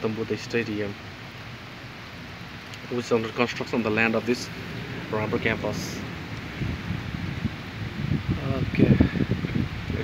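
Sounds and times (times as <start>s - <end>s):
rain: 0.0s - 10.0s
wind buffeting microphone: 2.4s - 10.0s.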